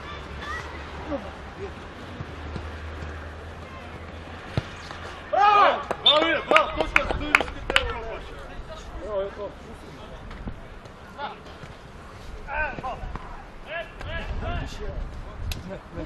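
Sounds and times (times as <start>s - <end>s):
players shouting: 5.2s - 7.3s.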